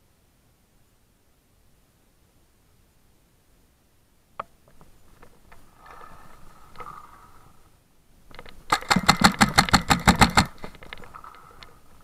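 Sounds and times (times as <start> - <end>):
paintball marker rapid fire: 8.7 - 10.6.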